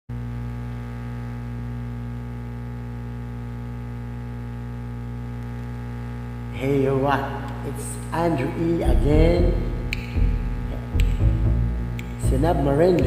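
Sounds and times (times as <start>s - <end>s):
electrical mains hum: 0.1s - 13.0s.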